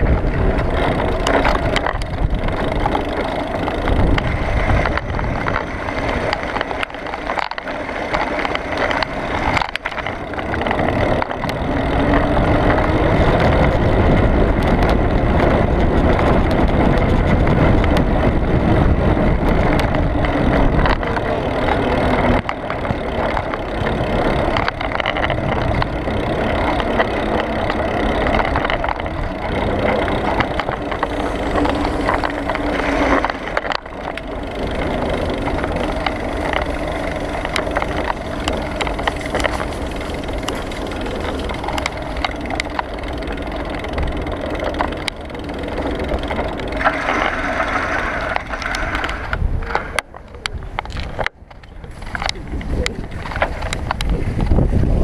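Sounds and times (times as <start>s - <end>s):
bicycle tyres rumbling on pavement: 0.0s - 55.0s
bike and mount rattling: 0.0s - 55.0s.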